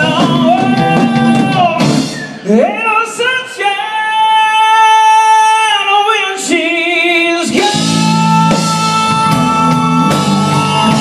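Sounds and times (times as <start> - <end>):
band with drums playing: 0.0 - 2.6, 7.4 - 11.0.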